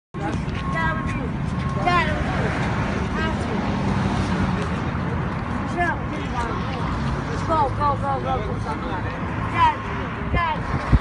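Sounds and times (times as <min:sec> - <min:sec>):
people talking and calling: 0:00.2 - 0:11.0
street traffic rumbling: 0:00.2 - 0:11.0.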